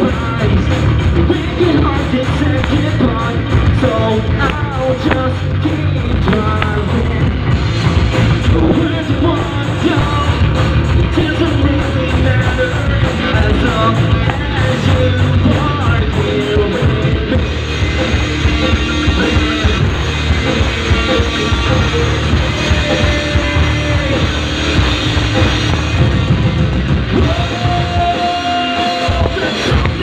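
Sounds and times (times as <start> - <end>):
person singing: 0.0 - 7.6, 8.4 - 25.6, 27.1 - 30.0
bass guitar: 0.0 - 30.0
drum kit: 0.0 - 30.0
electric guitars: 0.0 - 30.0.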